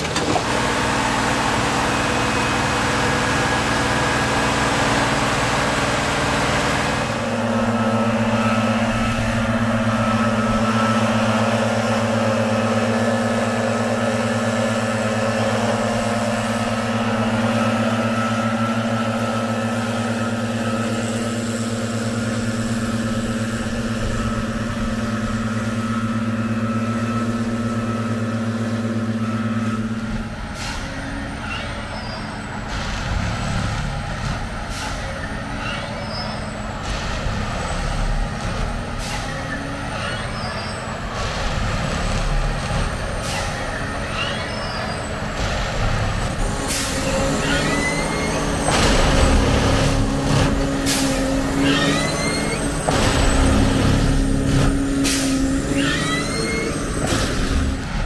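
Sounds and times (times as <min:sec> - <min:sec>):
heavy diesel engine running: 0:00.0 - 0:58.0
rough uneven machine noise: 0:00.0 - 0:58.0.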